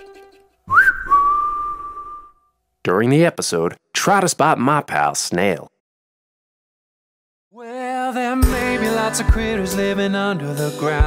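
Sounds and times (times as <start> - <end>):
whistled note sliding upward: 0.7 - 2.5.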